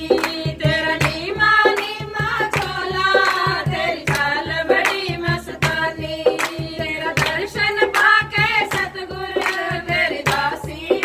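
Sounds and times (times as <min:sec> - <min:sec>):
hand drum beat: 0:00.0 - 0:11.0
rhythmic hand-clapping: 0:00.0 - 0:11.0
women singing devotional song: 0:00.0 - 0:11.0.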